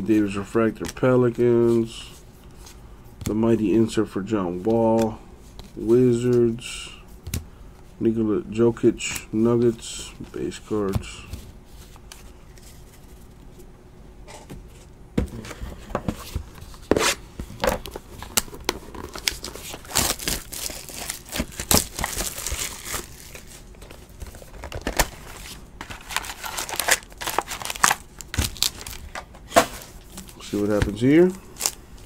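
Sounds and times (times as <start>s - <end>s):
foil card pack handled: 17.7s - 31.0s
plastic shrink-wrap tearing: 18.3s - 23.6s, 25.9s - 29.0s.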